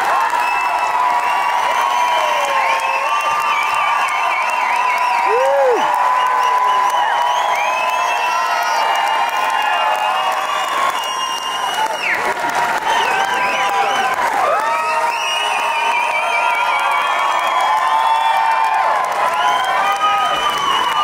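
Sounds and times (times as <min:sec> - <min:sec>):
audience clapping: 0:00.0 - 0:21.0
audience whooping and shouting: 0:00.0 - 0:21.0
whistles: 0:00.2 - 0:21.0.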